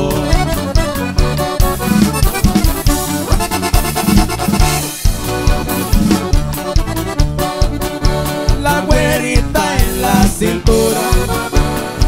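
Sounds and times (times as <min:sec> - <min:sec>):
accordion melody: 0:00.0 - 0:12.0
drum kit steady beat: 0:00.0 - 0:12.0
electric bass: 0:00.0 - 0:12.0
guitar: 0:00.0 - 0:12.0.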